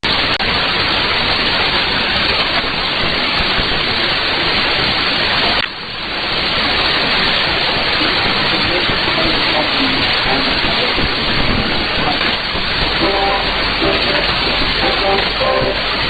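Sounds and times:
shortwave radio static hiss: 7.0s - 16.0s.

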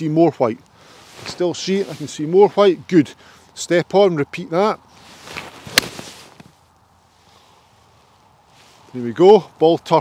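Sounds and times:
golf club swish: 5.0s - 6.5s.

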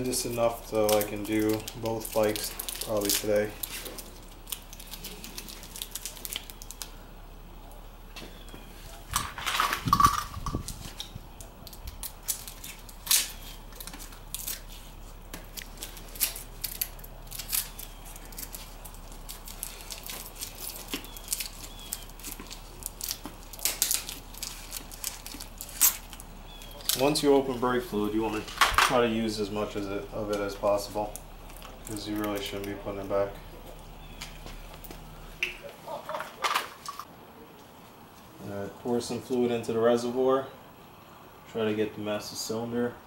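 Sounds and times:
scraping rustle: 8.6s - 29.2s.

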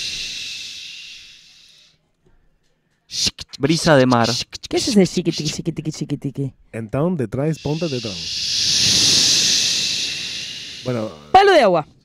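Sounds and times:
person mouth hissing rush: 0.0s - 1.9s, 3.1s - 5.7s, 7.6s - 11.6s.

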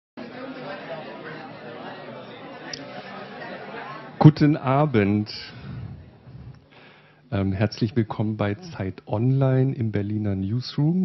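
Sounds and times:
audience chatter: 0.2s - 6.8s.

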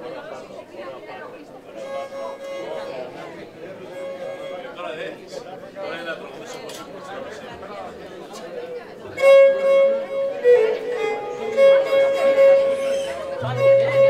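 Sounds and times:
crowd chatter: 0.0s - 14.0s
lyra bowed notes: 1.8s - 4.8s, 9.2s - 14.0s.

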